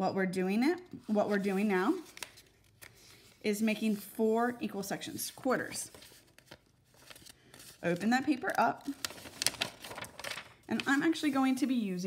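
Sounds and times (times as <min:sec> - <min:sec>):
paper rustling and crinkling: 0:01.1 - 0:04.1, 0:05.0 - 0:11.9.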